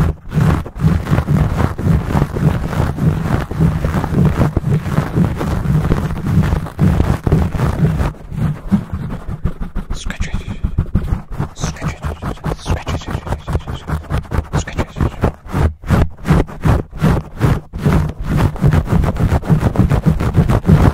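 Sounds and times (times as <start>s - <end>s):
fingers scratching microphone windscreen: 0.0s - 20.9s
heavy low rumble: 1.0s - 9.4s, 10.0s - 14.0s.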